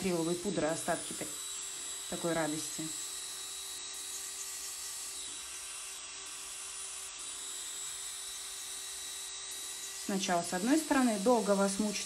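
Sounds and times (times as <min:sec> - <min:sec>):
electric nail drill humming: 0:00.0 - 0:12.0.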